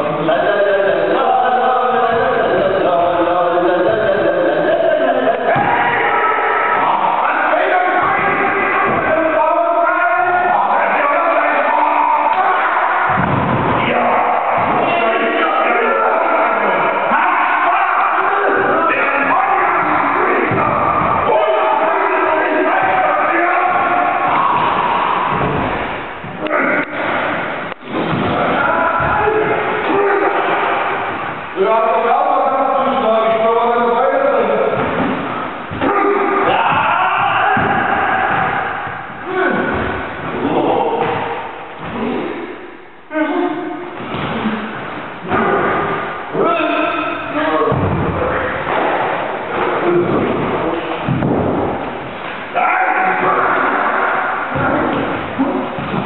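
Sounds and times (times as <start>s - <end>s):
group shouting battle cries: 5.3s - 27.3s, 28.2s - 31.2s, 35.8s - 42.2s, 52.5s - 55.9s.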